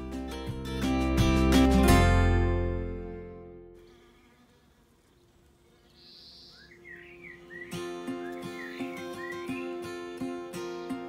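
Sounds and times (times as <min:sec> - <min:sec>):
music: 0:00.0 - 0:03.8, 0:07.4 - 0:11.0.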